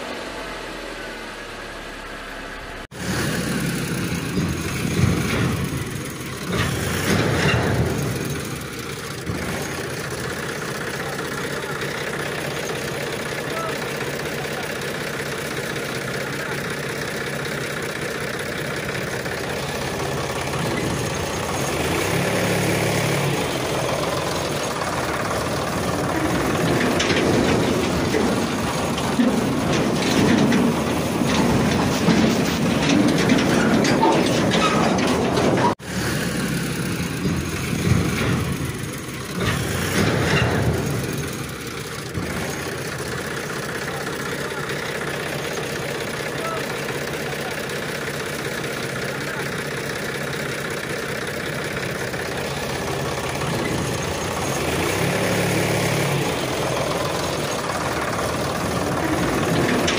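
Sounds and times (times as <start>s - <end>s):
vehicle engine running: 0.0s - 59.9s.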